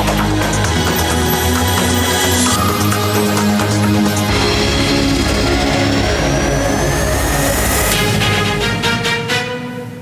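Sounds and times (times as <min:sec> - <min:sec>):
news theme music: 0:00.0 - 0:10.0
rising whooshing sweep: 0:00.9 - 0:09.0.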